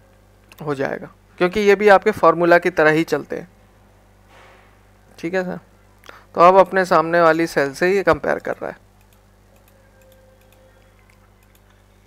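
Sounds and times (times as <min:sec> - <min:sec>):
low steady hum: 0:00.0 - 0:12.0
computer mouse clicks: 0:08.4 - 0:11.9.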